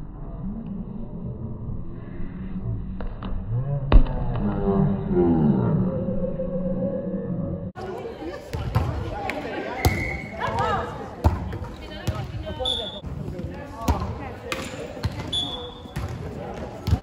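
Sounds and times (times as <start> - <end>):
volleyball hits echoing: 8.4 - 12.6, 13.2 - 17.0.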